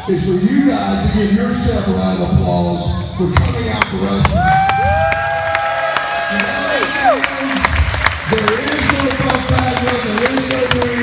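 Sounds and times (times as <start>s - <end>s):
crowd applauding and cheering: 3.8s - 11.0s
people whooping: 4.3s - 7.6s.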